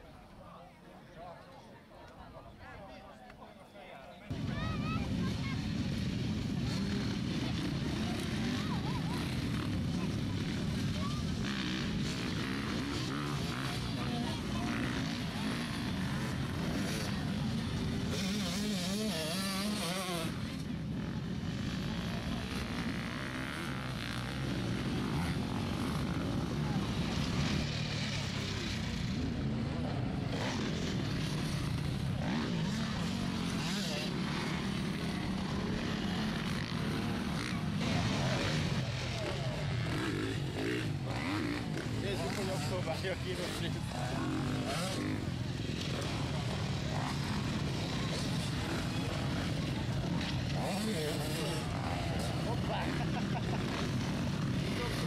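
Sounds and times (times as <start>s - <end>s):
voices: 0.0s - 55.0s
dirt bike engines revving: 4.3s - 55.0s.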